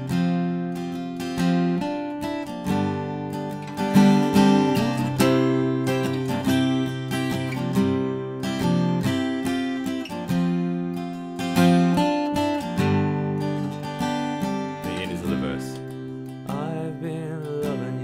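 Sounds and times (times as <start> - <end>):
acoustic guitar strummed chords: 0.0 - 18.0.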